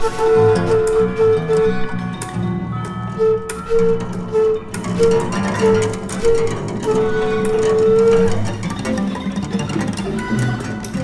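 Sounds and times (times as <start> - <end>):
plucked balalaika: 0.0 - 11.0.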